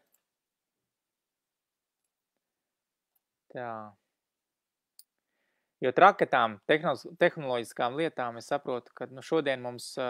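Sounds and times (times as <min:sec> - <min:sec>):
man speaking: 0:03.5 - 0:04.0, 0:05.8 - 0:10.0.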